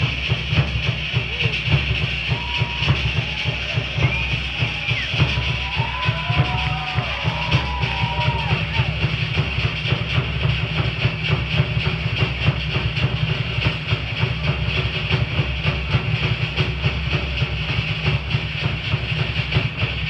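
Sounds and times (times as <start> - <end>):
fast driving drumming: 0.0 - 20.0.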